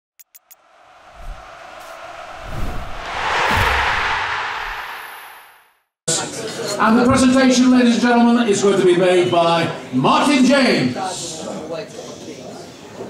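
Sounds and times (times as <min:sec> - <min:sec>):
whoosh: 0:00.6 - 0:05.8
low thuds: 0:00.8 - 0:05.6.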